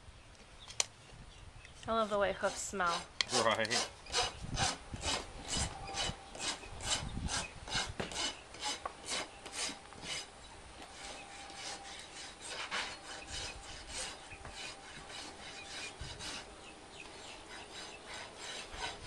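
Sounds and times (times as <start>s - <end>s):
rasp filing a hoof: 1.8s - 19.0s.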